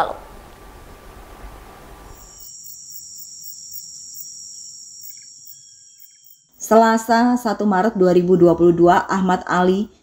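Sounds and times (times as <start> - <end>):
insects trilling: 2.1 - 7.3.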